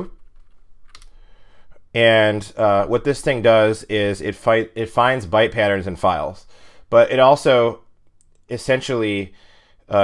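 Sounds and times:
keyboard typing: 0:00.0 - 0:01.2.

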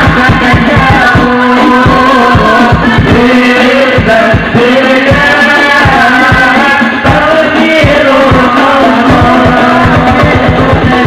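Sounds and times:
fast drum beat: 0:00.0 - 0:11.0
sustained melody line: 0:00.0 - 0:11.0.

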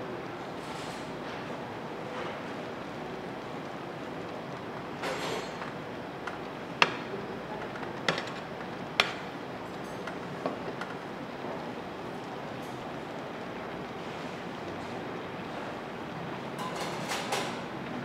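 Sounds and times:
food simmering with a hiss: 0:00.0 - 0:18.0.

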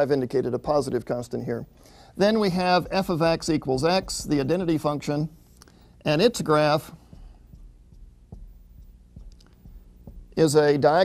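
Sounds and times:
low room hum: 0:00.0 - 0:11.0
pen knocking on paper: 0:06.5 - 0:10.6.

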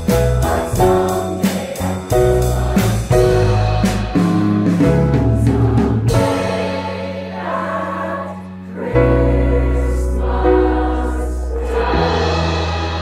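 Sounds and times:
school chorus singing: 0:00.0 - 0:04.8, 0:05.4 - 0:13.0
piano and bass: 0:00.0 - 0:13.0.

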